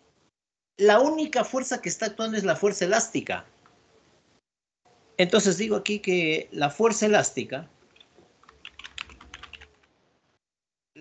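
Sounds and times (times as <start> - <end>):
typing on computer keyboard: 8.0 - 9.9.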